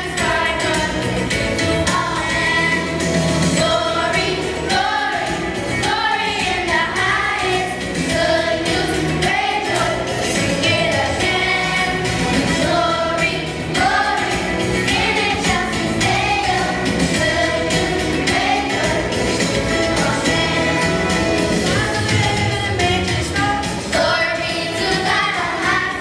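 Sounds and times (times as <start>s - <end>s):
children's choir singing: 0.0s - 26.0s
instrumental accompaniment with beat: 0.0s - 26.0s.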